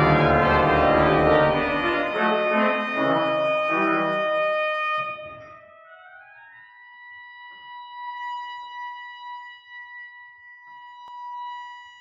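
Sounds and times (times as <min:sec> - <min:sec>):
pipe organ holding high note: 0:00.0 - 0:05.4.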